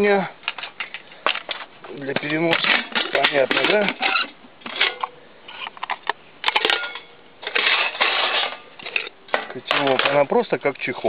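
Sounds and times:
metal pot clinking and scraping: 0:02.3 - 0:10.2.

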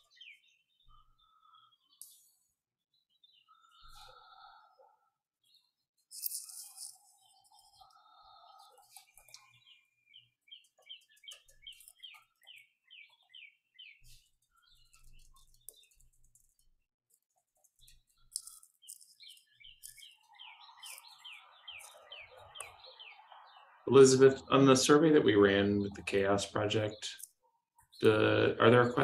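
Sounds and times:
faint bird singing: 0:00.0 - 0:16.8, 0:17.4 - 0:29.0.

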